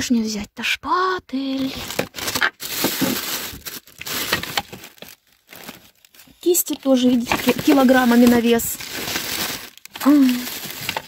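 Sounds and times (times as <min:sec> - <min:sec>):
rummaging through plastic crate: 0:01.5 - 0:11.0.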